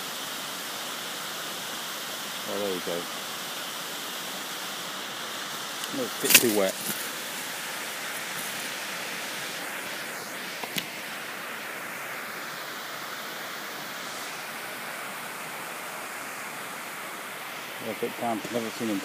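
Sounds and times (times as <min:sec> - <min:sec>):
running water rushing: 0:00.0 - 0:19.0.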